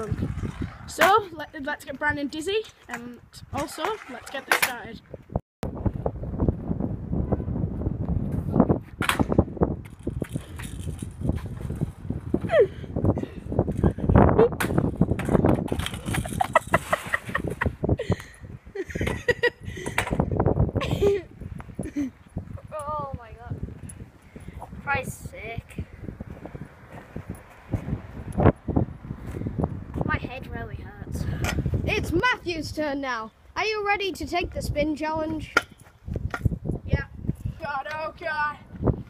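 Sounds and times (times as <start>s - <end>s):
scooter clattering on asphalt: 0.0s - 5.0s, 14.6s - 17.6s
voices: 0.0s - 5.0s
people laughing: 16.0s - 17.7s.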